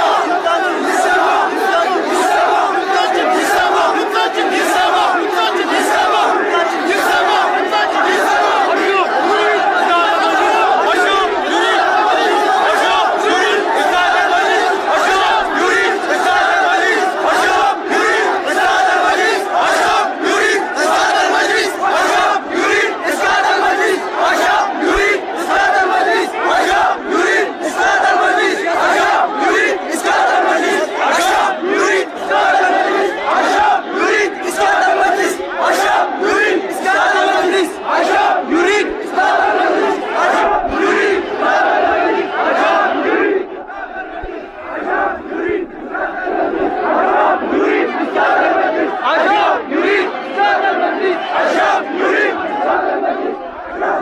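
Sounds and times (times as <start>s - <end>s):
crowd shouting together: 0.0s - 54.0s.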